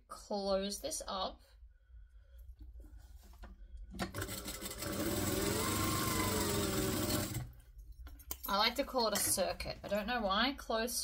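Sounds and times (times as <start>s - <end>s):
sewing machine stitching: 4.0s - 7.6s.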